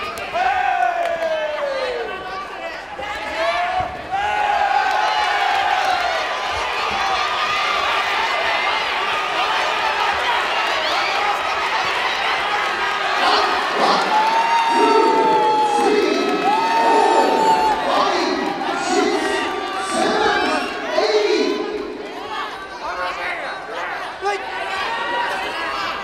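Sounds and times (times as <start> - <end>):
crowd cheering and shouting: 0.0 - 26.0
long drawn-out shouts: 3.0 - 23.0.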